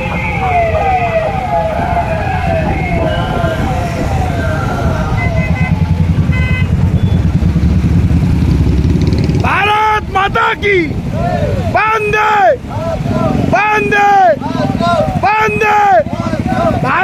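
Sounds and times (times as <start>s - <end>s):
police siren falling tones: 0.0s - 6.0s
motorcycle engines rumbling: 0.0s - 17.0s.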